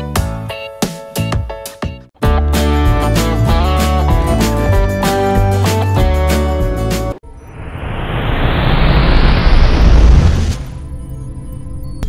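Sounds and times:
rising whoosh: 0:07.2 - 0:11.8
deep rumble: 0:07.5 - 0:11.0.

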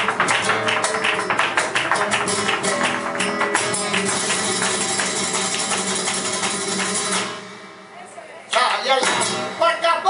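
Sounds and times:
hand clapping rhythm: 0:00.0 - 0:07.6, 0:08.5 - 0:09.5
flamenco guitar: 0:00.0 - 0:10.0
sharp percussive strikes: 0:08.6 - 0:09.7.

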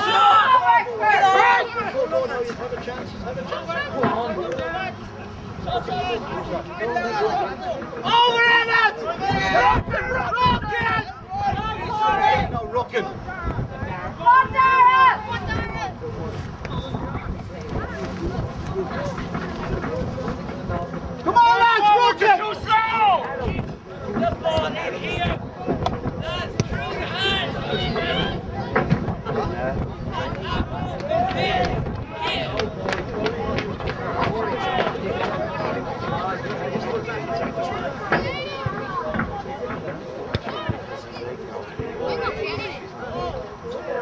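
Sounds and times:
people calling out: 0:00.0 - 0:02.4, 0:05.7 - 0:16.0
distant voices: 0:00.0 - 0:44.0
wind buffeting microphone: 0:09.1 - 0:40.0.

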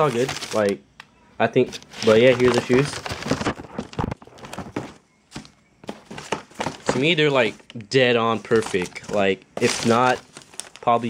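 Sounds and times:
tissue paper rustling: 0:00.0 - 0:00.8, 0:01.6 - 0:11.0.

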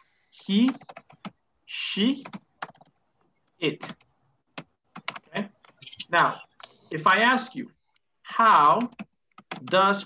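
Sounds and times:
computer keyboard typing: 0:00.4 - 0:01.4, 0:02.2 - 0:03.0, 0:03.8 - 0:06.8, 0:08.5 - 0:09.9.

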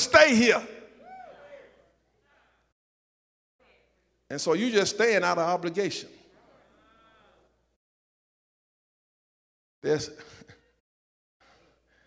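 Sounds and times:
amplified voice of preacher: 0:00.0 - 0:01.0, 0:04.3 - 0:06.2.

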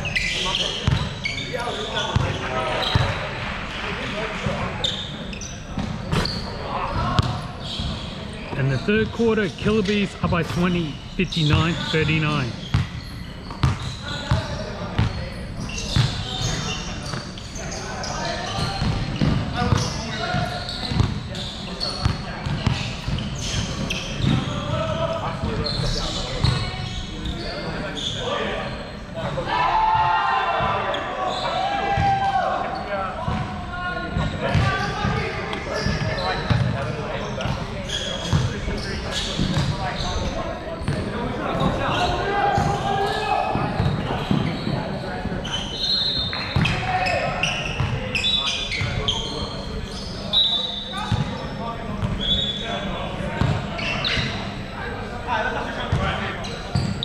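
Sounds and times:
short high squeaks: 0:00.0 - 0:02.1, 0:04.8 - 0:06.6
indistinct voices echoing: 0:06.6 - 0:12.8.

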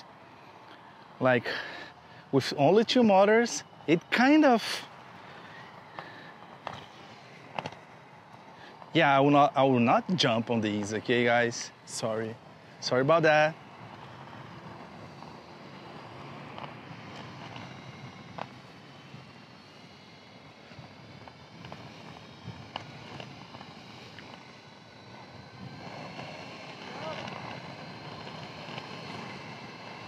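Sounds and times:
electric motor whine: 0:00.0 - 0:30.0
skate wheels rumbling on asphalt: 0:00.0 - 0:30.0.

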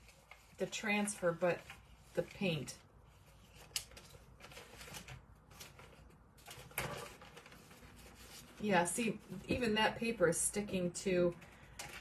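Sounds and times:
paper rustling and crinkling: 0:00.0 - 0:09.7.

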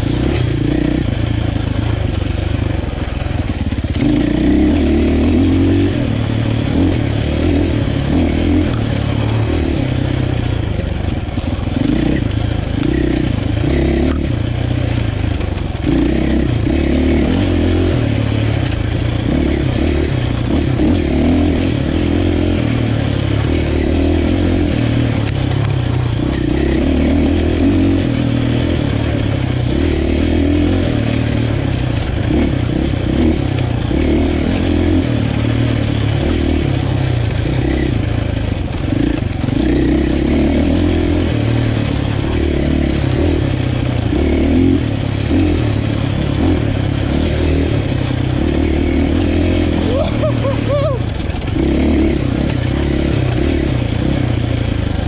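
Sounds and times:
motorcycle engine revving under load: 0:00.0 - 0:55.0.

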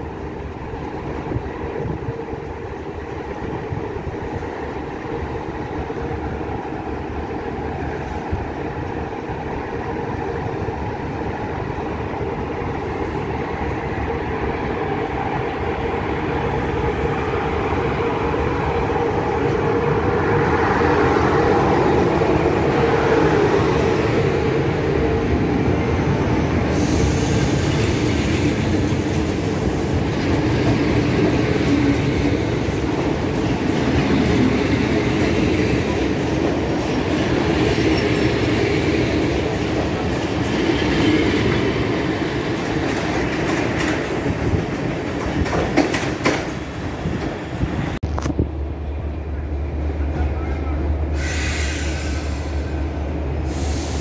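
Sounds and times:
train wheels rumbling on rails: 0:00.0 - 0:54.0
wheels clicking over rail joints: 0:42.4 - 0:47.4.

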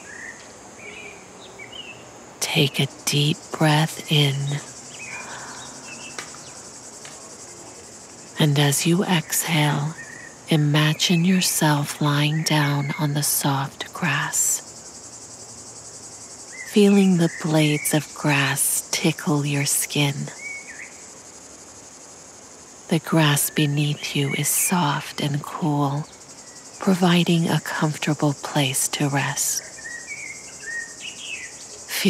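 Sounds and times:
insects chirping: 0:00.0 - 0:32.0.

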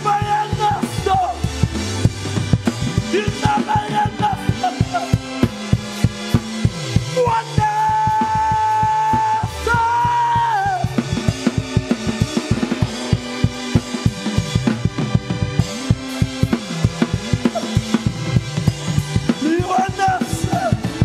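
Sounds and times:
fast steady drum beat: 0:00.0 - 0:21.0
walking bass line: 0:00.0 - 0:21.0.

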